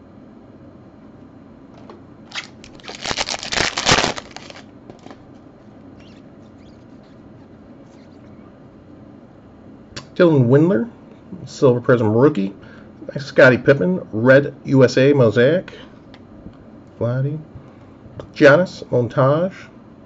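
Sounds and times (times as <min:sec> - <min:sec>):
cards clicking: 0:02.3 - 0:05.2
foil wrapper crinkling: 0:02.3 - 0:05.2.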